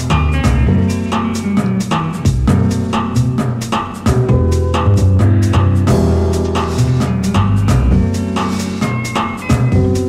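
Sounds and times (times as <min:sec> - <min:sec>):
deep bass line: 0:00.0 - 0:10.0
drum kit beat: 0:00.0 - 0:10.0.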